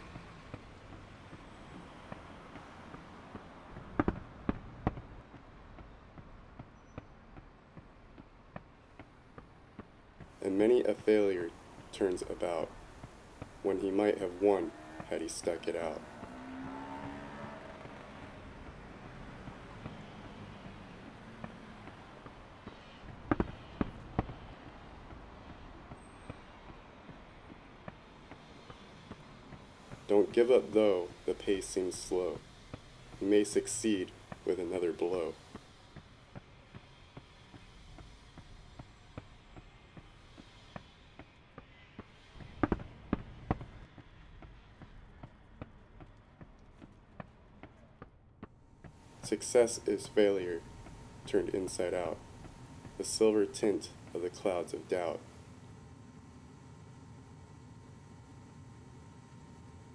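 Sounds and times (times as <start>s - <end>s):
city street noise: 0.0s - 59.9s
steady traffic hum: 0.0s - 59.9s
car passing: 10.4s - 35.6s, 49.0s - 59.9s.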